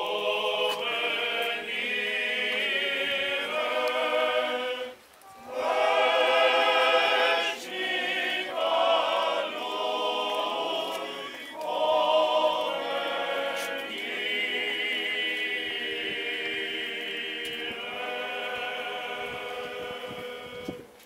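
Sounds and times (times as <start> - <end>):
male choir singing a cappella chant: 0.0 - 21.0.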